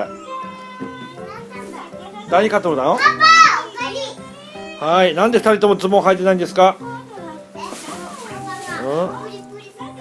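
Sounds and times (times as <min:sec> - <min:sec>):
background music: 0:00.0 - 0:10.0
young children's voices playing: 0:00.8 - 0:04.9.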